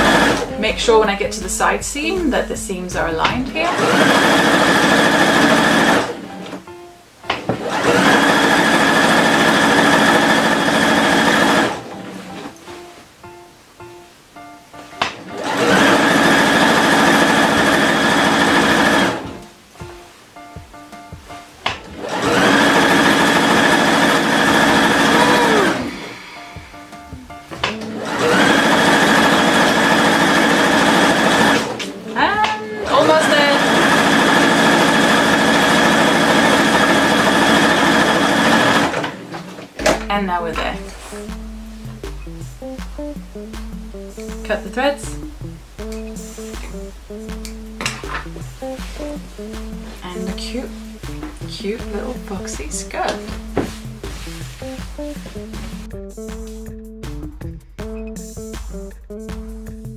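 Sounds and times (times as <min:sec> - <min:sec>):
electric sewing machine stitching: 0:00.0 - 0:00.5, 0:03.0 - 0:06.6, 0:07.3 - 0:12.5, 0:15.1 - 0:19.4, 0:21.7 - 0:26.2, 0:27.6 - 0:32.0, 0:32.8 - 0:40.0.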